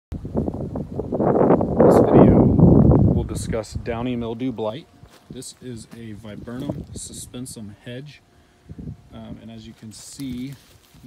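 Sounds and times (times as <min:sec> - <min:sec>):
wind buffeting microphone: 0:00.1 - 0:07.6, 0:08.6 - 0:10.0.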